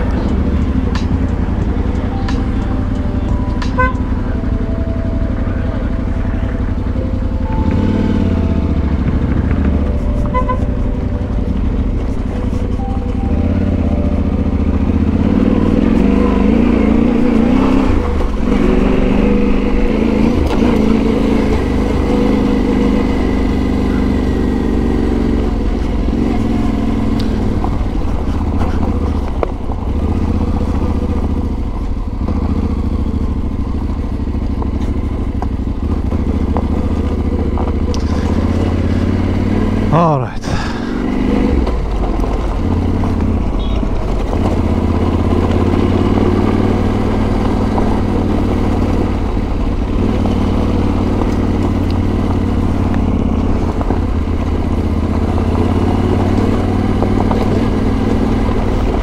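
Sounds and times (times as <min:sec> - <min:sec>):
motorcycle engine at low speed: 0:00.0 - 0:59.0.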